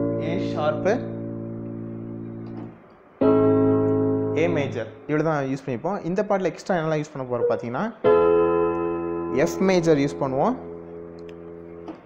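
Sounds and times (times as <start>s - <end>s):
electronic keyboard chord: 0.0s - 5.1s, 7.4s - 12.0s.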